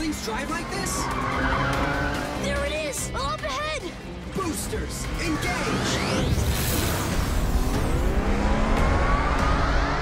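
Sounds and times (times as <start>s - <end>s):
car engine racing: 0.0s - 3.5s, 4.5s - 10.0s
background music: 0.0s - 10.0s.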